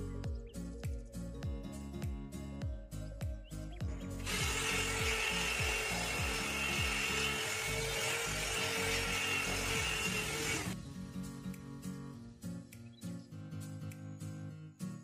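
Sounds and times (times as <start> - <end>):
background music: 0.0 - 15.0
electric polisher whirring: 4.2 - 10.8.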